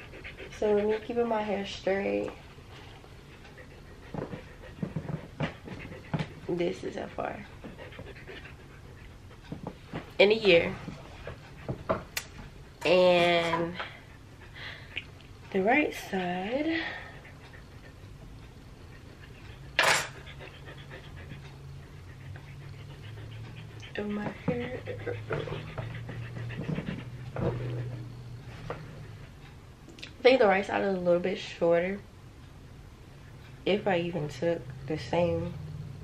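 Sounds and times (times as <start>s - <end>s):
dog panting: 0.0s - 29.8s.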